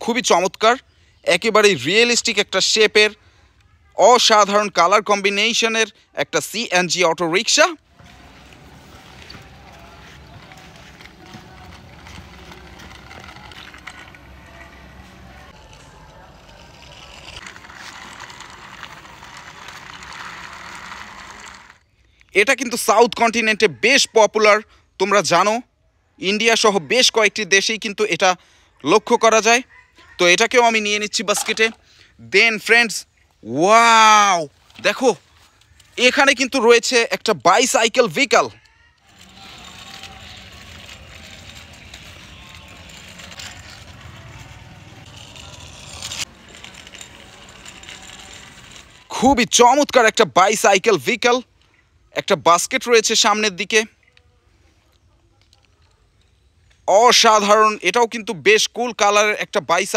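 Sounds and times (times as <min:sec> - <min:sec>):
toy wheels scraping on concrete: 0:07.1 - 0:22.9, 0:29.3 - 0:54.1.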